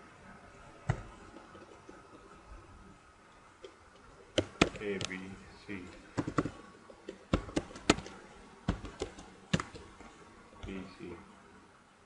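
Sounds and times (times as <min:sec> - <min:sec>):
man speaking: 0:04.7 - 0:06.0, 0:10.6 - 0:11.3.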